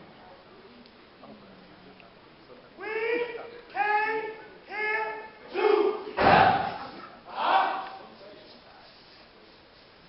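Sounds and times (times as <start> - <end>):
low murmur of a hall: 0.0 - 10.0
loud high-pitched human call: 2.8 - 8.0.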